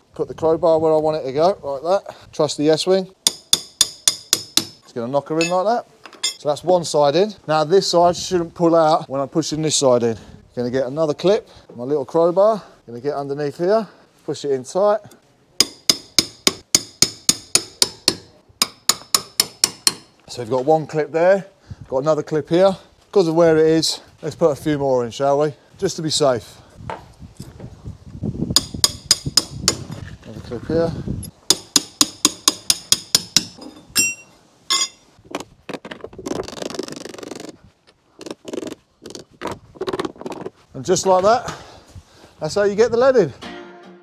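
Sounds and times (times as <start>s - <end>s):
hammer tapping metal: 3.2s - 4.8s, 15.6s - 20.2s, 31.5s - 35.0s
metal tools clinking on stone: 5.4s - 6.4s, 33.5s - 35.1s.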